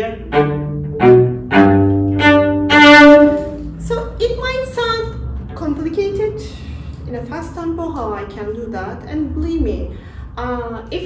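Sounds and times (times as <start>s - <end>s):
bowed cello notes: 0.0s - 10.1s.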